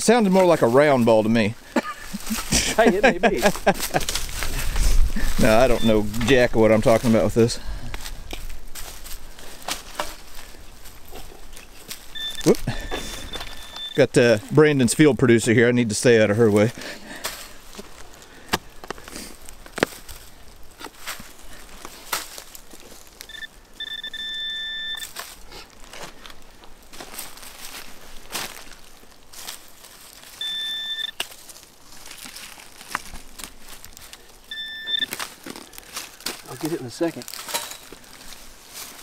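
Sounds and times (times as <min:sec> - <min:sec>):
metal detector electronic tone: 0:05.4 - 0:06.4, 0:12.1 - 0:14.1, 0:23.3 - 0:25.1, 0:30.4 - 0:31.2, 0:34.5 - 0:35.1.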